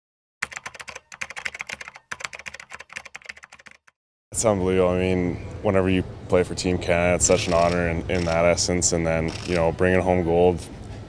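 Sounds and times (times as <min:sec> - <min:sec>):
rapid keyboard typing: 0:00.4 - 0:04.0.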